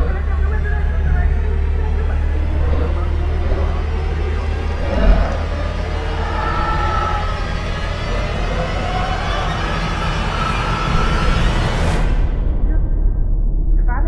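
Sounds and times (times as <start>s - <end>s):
eerie wavering tones: 0.0s - 12.2s
deep rumbling drone: 0.0s - 14.0s.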